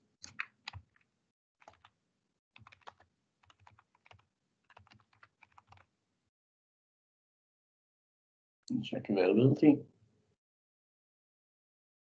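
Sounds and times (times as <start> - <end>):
typing on computer keyboard: 0.2 - 2.0, 2.6 - 5.9.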